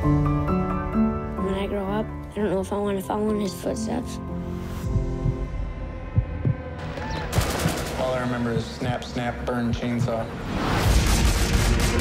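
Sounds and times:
low thuds: 4.8 - 9.1
machine-gun fire: 7.0 - 8.5, 10.9 - 12.0.

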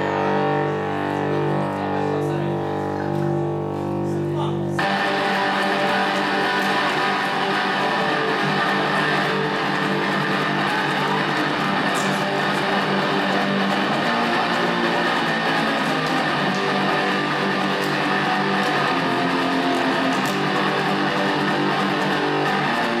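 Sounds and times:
guitar playing: 0.0 - 23.0.

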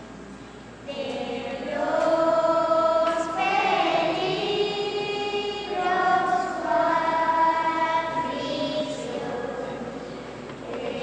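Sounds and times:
children's choir singing: 0.9 - 11.0.

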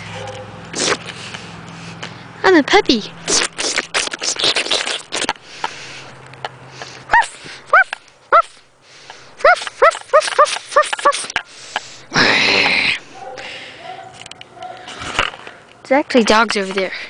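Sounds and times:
dogs barking high yips: 0.0 - 0.6, 7.1 - 8.6, 9.4 - 11.4, 13.2 - 14.9.

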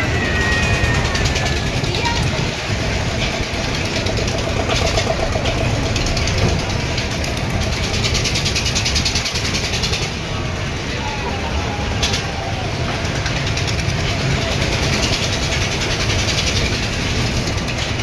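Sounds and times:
people talking: 0.0 - 8.9, 9.6 - 15.4
fast rattling: 0.0 - 10.3, 12.8 - 18.0
fairground ride rumbling: 0.0 - 18.0.

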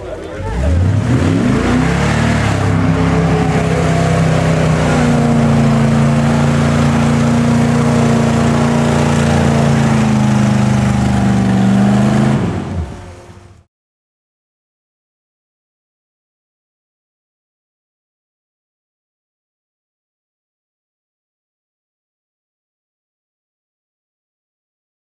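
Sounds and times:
engine revving at high revs: 0.6 - 13.4.

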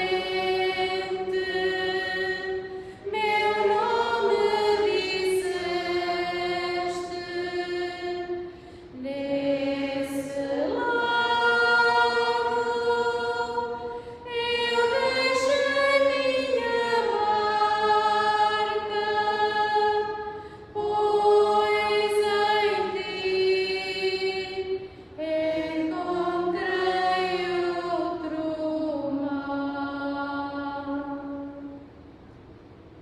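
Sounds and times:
choir singing a slow hymn: 0.0 - 32.0.

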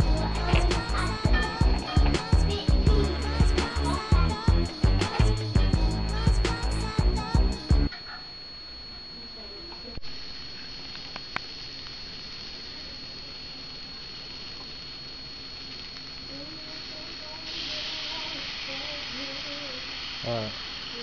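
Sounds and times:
thin high whine: 0.0 - 21.0
vegetables sizzling in a pot: 16.7 - 21.0.

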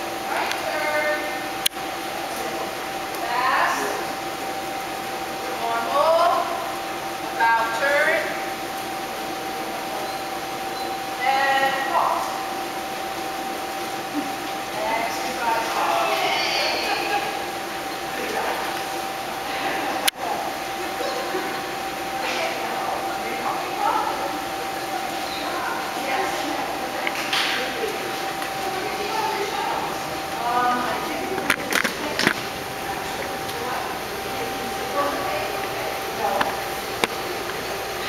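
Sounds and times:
steady hum: 0.0 - 38.0.

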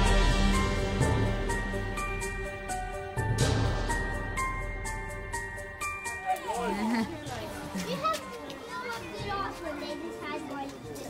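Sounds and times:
children chattering: 5.8 - 11.0.

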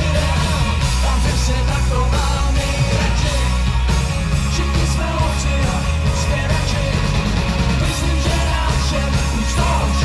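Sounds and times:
heavy bass: 0.0 - 10.0
pop rock band playing live: 0.0 - 10.0.

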